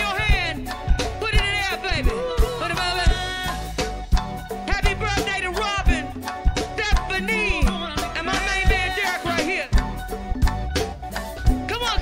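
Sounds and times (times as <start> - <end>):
woman singing: 0.0 - 3.8, 4.6 - 9.8, 11.7 - 12.0
live band playing: 0.0 - 12.0.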